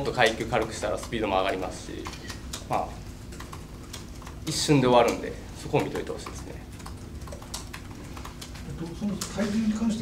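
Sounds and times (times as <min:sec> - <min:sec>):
typing on laptop keyboard: 0:00.0 - 0:09.4
faint low room hum: 0:00.0 - 0:10.0.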